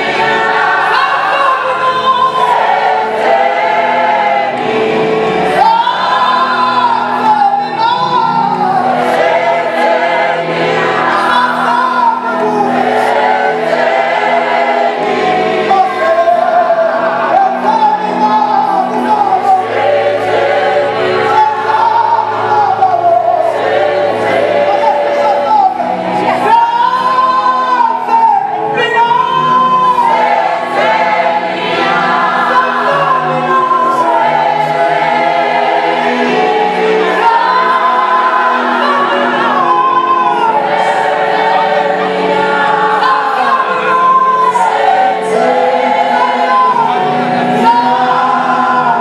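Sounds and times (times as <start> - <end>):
choir singing a hymn: 0.0 - 49.0.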